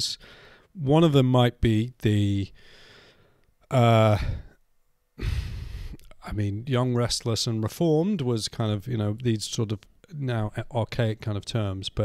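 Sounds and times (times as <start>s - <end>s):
man saying uh: 3.7s - 4.5s
man sighing: 3.9s - 4.6s, 5.2s - 6.0s.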